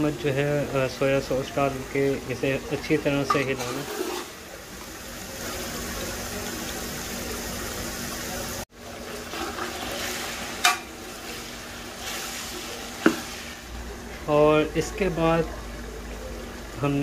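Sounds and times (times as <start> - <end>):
chicken sizzling in oil: 0.0 - 17.0
ladle stirring: 0.1 - 7.6, 8.8 - 14.2.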